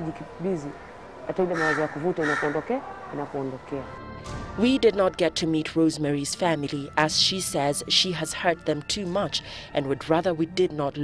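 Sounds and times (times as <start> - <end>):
woman talking: 0.0 - 3.9, 4.6 - 11.0.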